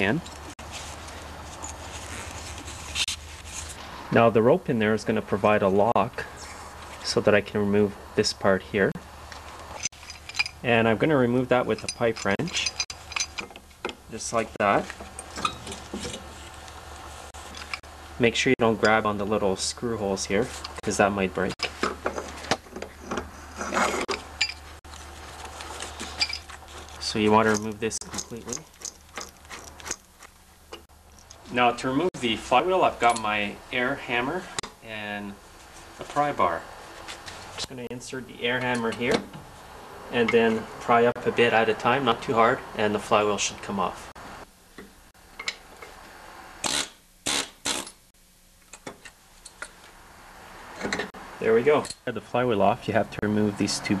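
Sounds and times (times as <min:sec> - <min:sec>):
rasping metal scrape: 0:23.3 - 0:30.3
pneumatic air hammer bursts: 0:46.6 - 0:48.0.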